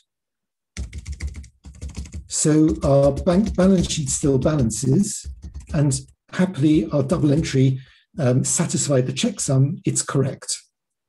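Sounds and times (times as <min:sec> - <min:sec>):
computer keyboard typing: 0:00.8 - 0:07.6.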